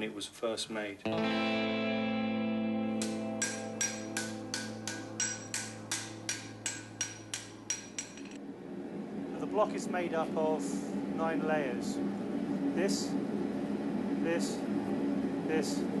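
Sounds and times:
distorted electric guitar chord: 1.1s - 6.6s
ringing metallic strikes: 2.9s - 8.4s.

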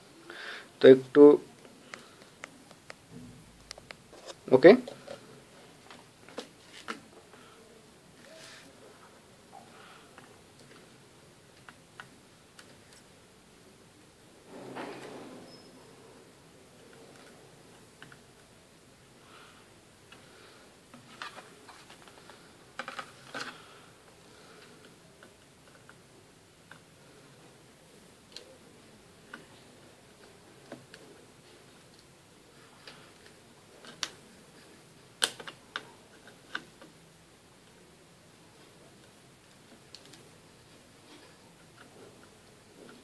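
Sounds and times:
low room noise: 0.0s - 43.0s.

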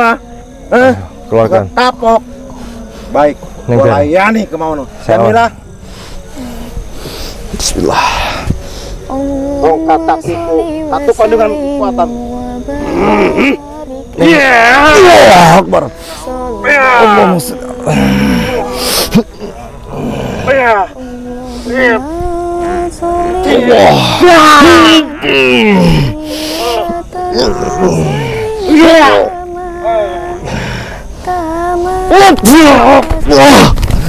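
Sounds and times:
person humming with buzzing voice: 8.0s - 34.0s
long howl-like cries: 9.1s - 33.6s.

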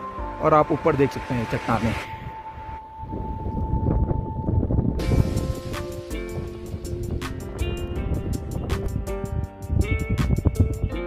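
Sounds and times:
held music tone: 0.0s - 11.0s
wind buffeting microphone: 2.1s - 11.0s.

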